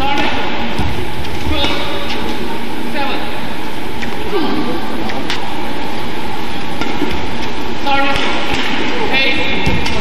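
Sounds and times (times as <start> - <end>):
rackets striking shuttlecock: 0.0 - 2.6, 6.6 - 10.0
crowd chatter: 0.0 - 10.0.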